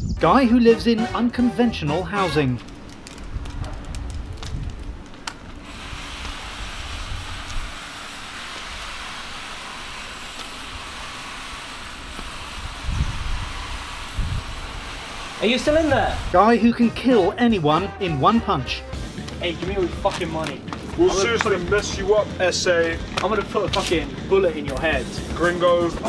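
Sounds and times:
wind hiss: 0:02.0 - 0:17.8
distant traffic: 0:19.0 - 0:26.0.

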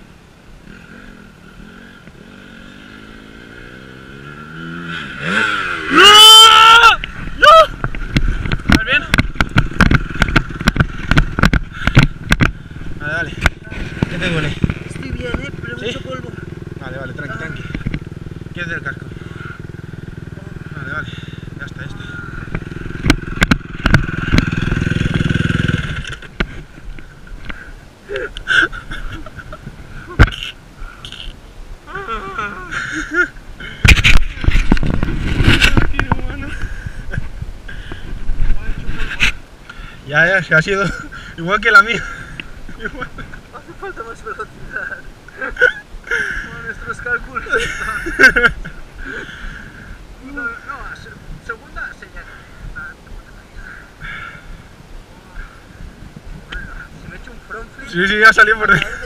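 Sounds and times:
dirt bike engine revving: 0:00.6 - 0:26.6
hard knocks and clatter: 0:07.8 - 0:12.6.

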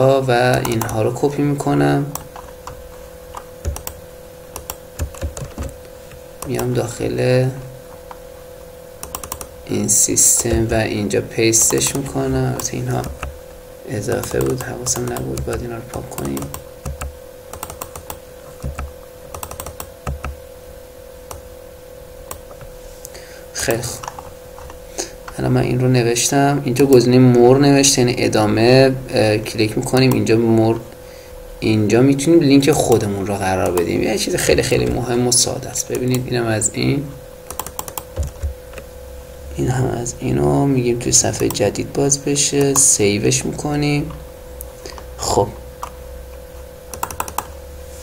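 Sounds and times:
faint steady hum: 0:00.0 - 0:48.0
computer keyboard typing: 0:00.4 - 0:01.1, 0:02.1 - 0:05.8, 0:06.4 - 0:06.8, 0:09.0 - 0:09.5, 0:11.6 - 0:13.4, 0:14.0 - 0:20.4, 0:37.5 - 0:38.5, 0:46.9 - 0:47.6
keyboard key clicks: 0:46.9 - 0:47.5.

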